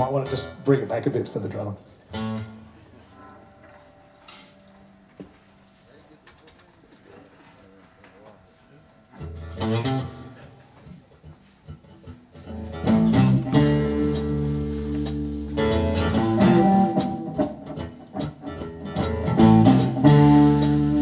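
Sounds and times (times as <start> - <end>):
guitar phrase: 0.0 - 5.4, 8.9 - 21.0
live blues band: 9.2 - 21.0
bass line: 12.4 - 21.0.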